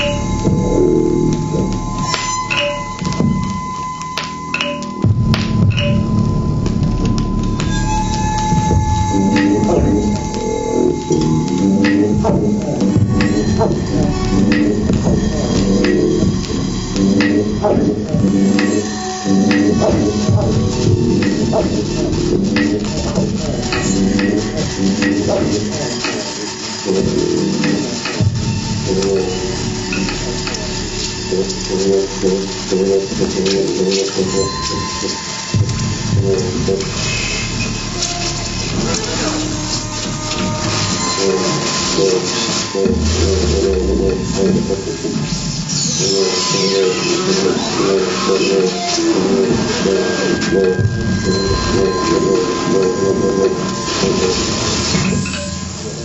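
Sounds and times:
dense low rumbling noise: 0:00.0 - 0:04.2, 0:04.9 - 0:45.7
scattered clicks: 0:00.0 - 0:37.0
steady high tone: 0:00.0 - 0:56.0.

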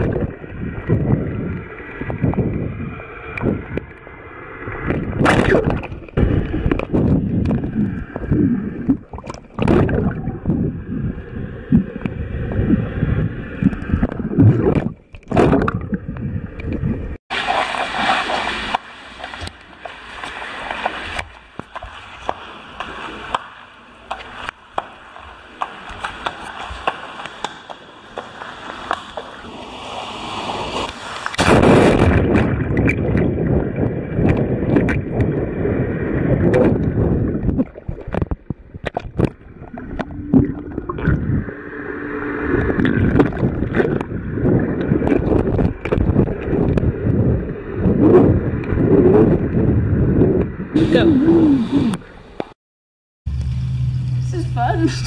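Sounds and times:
underwater gurgling and bubbling: 0:00.0 - 0:22.2, 0:30.2 - 0:52.2
knocks and pops: 0:04.9 - 0:10.2.

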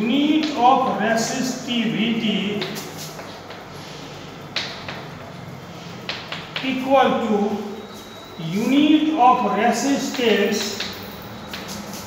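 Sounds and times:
chalk scratching on blackboard: 0:02.6 - 0:03.6, 0:11.5 - 0:12.0
chalk striking board: 0:02.6 - 0:03.7, 0:10.1 - 0:12.0.

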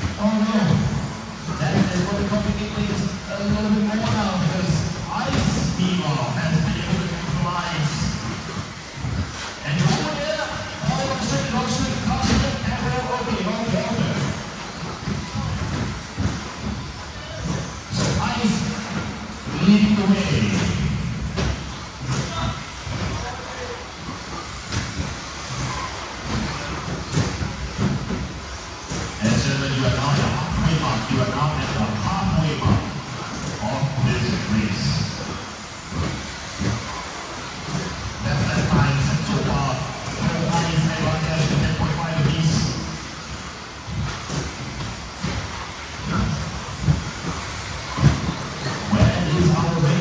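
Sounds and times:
tyres running on turf: 0:00.0 - 0:50.0.

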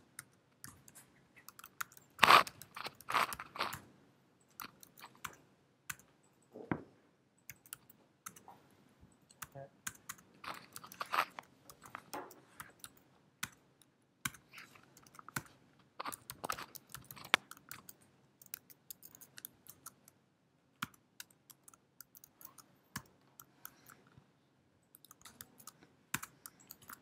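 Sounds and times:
computer keyboard typing: 0:00.2 - 0:03.8, 0:04.5 - 0:06.1, 0:07.4 - 0:08.4, 0:09.3 - 0:13.6, 0:14.2 - 0:20.1, 0:20.8 - 0:24.1, 0:24.9 - 0:27.0.

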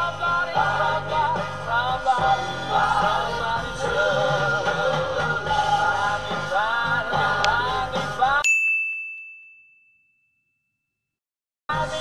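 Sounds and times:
music with singing: 0:00.0 - 0:08.5, 0:11.7 - 0:12.0
bright ding: 0:08.4 - 0:10.4.

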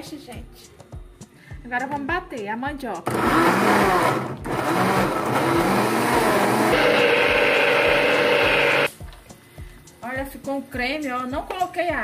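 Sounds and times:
blender running: 0:03.1 - 0:08.9.

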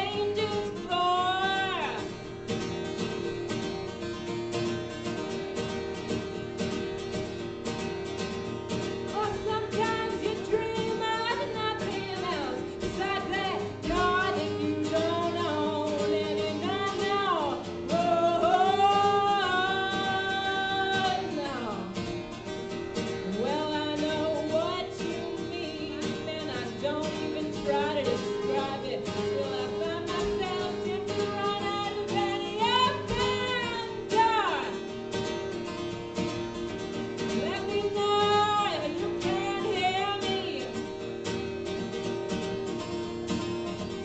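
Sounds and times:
woman singing: 0:00.0 - 0:02.4, 0:09.0 - 0:22.2, 0:23.0 - 0:34.9, 0:37.2 - 0:41.2
strummed acoustic guitar: 0:00.0 - 0:44.0.

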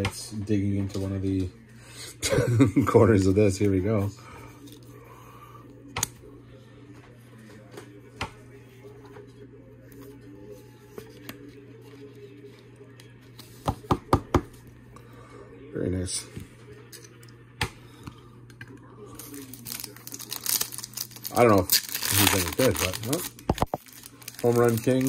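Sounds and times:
low steady hum: 0:00.0 - 0:25.0
plastic sleeve rustling: 0:19.2 - 0:25.0.

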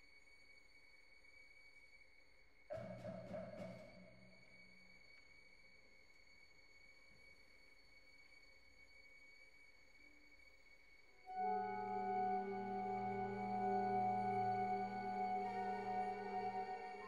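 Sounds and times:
faint steady high tone: 0:10.0 - 0:17.0
soft orchestral chord: 0:11.3 - 0:17.0.

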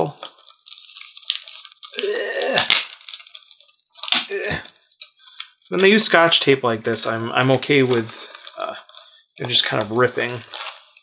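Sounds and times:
tape being peeled off: 0:00.2 - 0:06.0.

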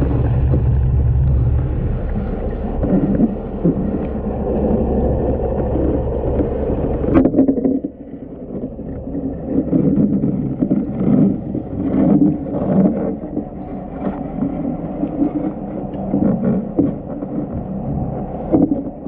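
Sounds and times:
low underwater rumble: 0:00.0 - 0:19.0
underwater water noise: 0:00.0 - 0:19.0.

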